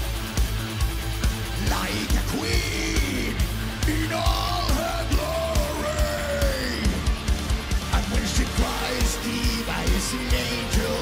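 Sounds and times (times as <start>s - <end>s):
drum beat: 0.0s - 11.0s
pop-rock band playing: 0.0s - 11.0s
male lead vocal singing: 1.6s - 7.2s, 7.8s - 11.0s.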